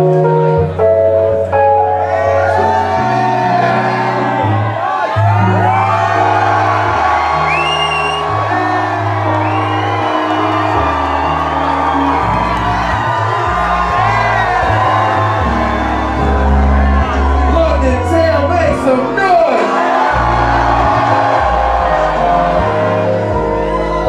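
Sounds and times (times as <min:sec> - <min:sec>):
crowd whooping and shouting: 0:01.5 - 0:24.0
deep bass line: 0:02.7 - 0:19.4, 0:20.1 - 0:24.0.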